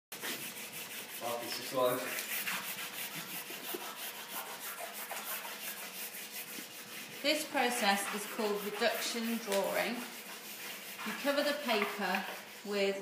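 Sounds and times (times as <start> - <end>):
drawing tool rubbing on paper: 0.1 - 12.9.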